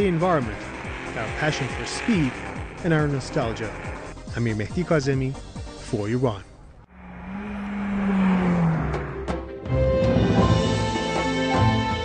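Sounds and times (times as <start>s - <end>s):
drag racing car speeding past: 7.0s - 9.5s.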